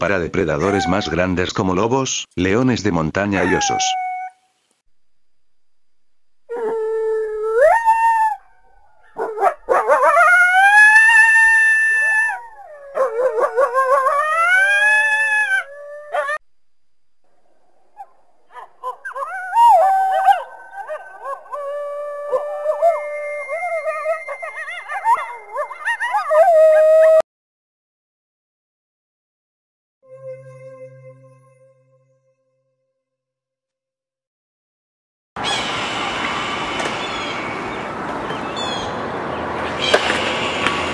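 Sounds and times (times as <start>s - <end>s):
coyote howling: 0.6s - 1.2s, 3.4s - 4.4s, 6.5s - 16.4s, 18.0s - 27.2s
coyotes howling in chorus: 0.6s - 1.2s, 3.3s - 4.3s, 6.5s - 16.4s, 18.0s - 27.2s.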